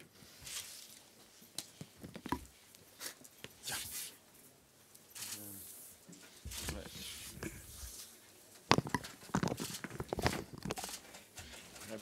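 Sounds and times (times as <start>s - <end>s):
paper rustling: 6.4s - 8.2s, 8.8s - 12.0s.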